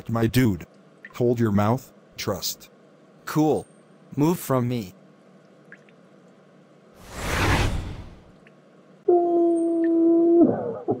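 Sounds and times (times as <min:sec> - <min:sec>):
cartoon whooshing hit: 0:07.0 - 0:08.2.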